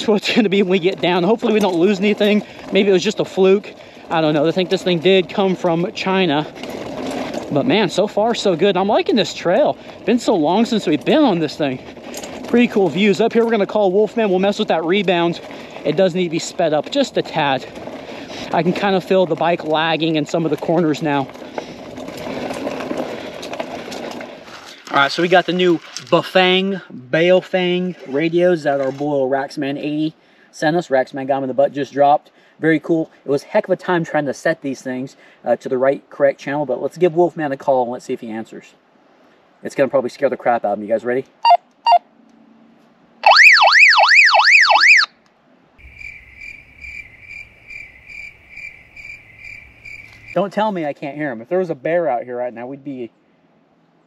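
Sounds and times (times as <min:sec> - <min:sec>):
bike clicks and rattles: 0:00.0 - 0:26.7
bike tyres rolling on dirt trail: 0:00.0 - 0:38.6, 0:45.8 - 0:53.0.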